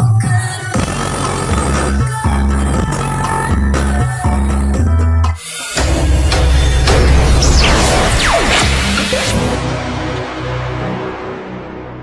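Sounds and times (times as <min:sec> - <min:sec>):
loud dance music with heavy bass: 0:05.5 - 0:09.6.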